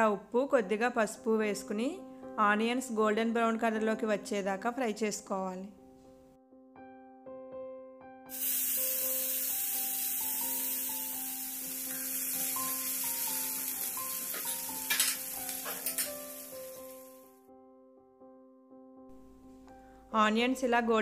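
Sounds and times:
onions sizzling in hot oil: 8.3 - 17.3.

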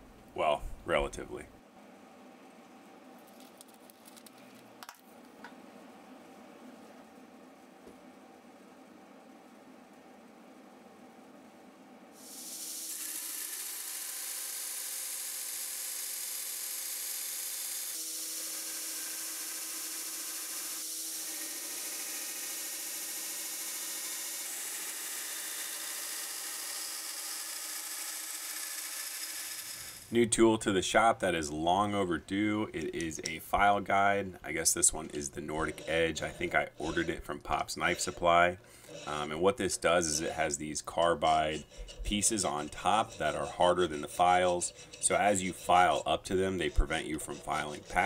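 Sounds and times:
belt grinder grinding steel: 12.2 - 30.1, 35.1 - 48.0
pen tracing on paper: 41.3 - 48.0.

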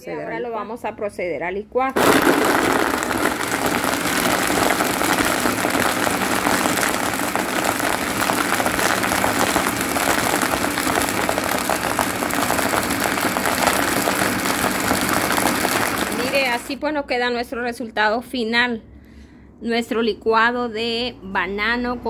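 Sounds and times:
blender running: 1.9 - 16.8.

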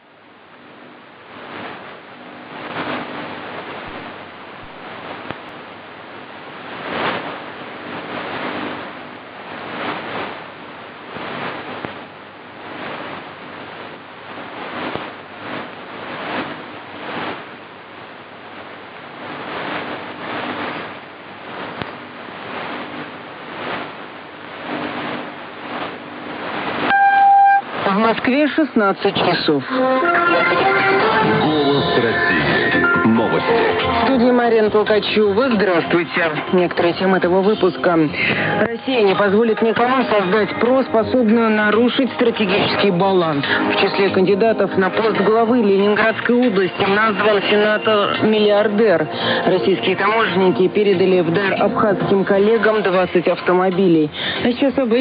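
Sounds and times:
shortwave radio static and hiss: 0.0 - 55.0
time signal beep: 26.9 - 27.7.

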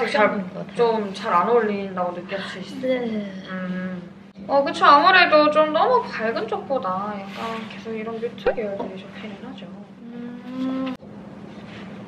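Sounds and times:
woman humming: 10.0 - 11.0.

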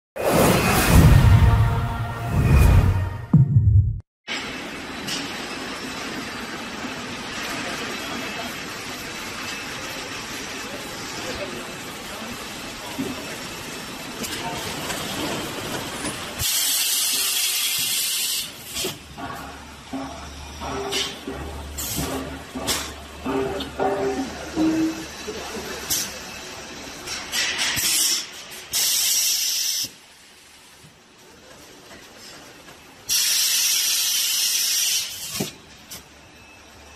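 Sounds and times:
vacuum packing machine hissing air: 27.8 - 30.0, 33.1 - 35.6.

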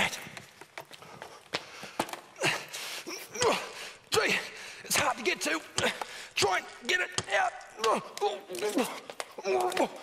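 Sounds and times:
light footsteps and knocks: 0.0 - 2.4
man's wordless vocal sounds: 2.4 - 10.0.

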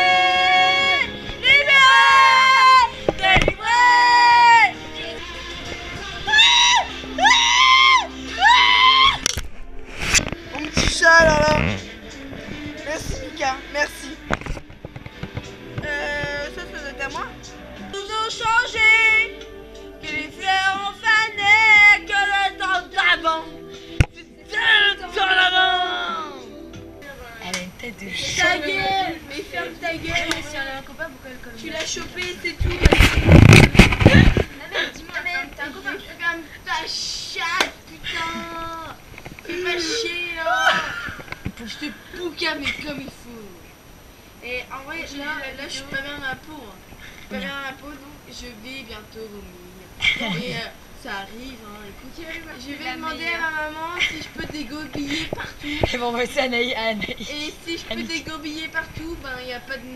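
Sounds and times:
background music: 0.0 - 37.2
camera handling rumble: 32.7 - 34.5.

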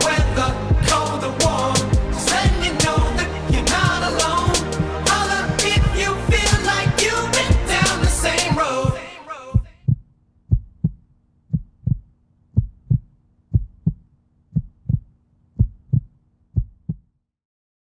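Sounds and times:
music: 0.0 - 9.7
heartbeat thumps: 0.2 - 9.0, 9.6 - 17.1.

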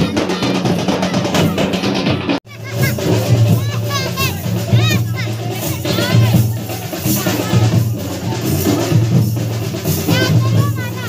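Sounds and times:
high-pitched voices singing: 0.0 - 8.9
music: 0.0 - 11.0.

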